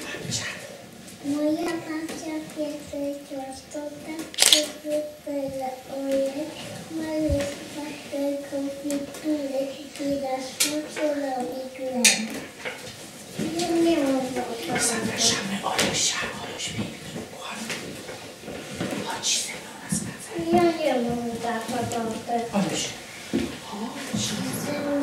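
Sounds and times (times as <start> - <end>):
children singing: 24.1 - 25.0.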